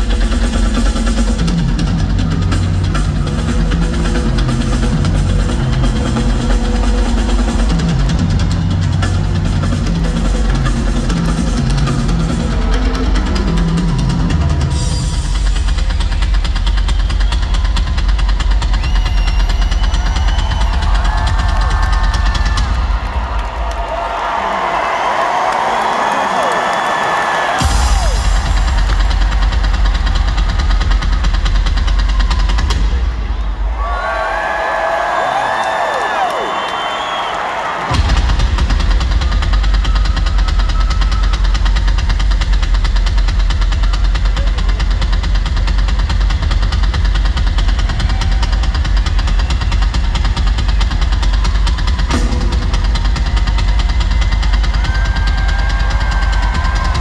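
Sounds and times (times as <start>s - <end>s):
rock drum solo: 0.0s - 57.0s
crowd cheering: 2.9s - 45.5s, 46.2s - 57.0s.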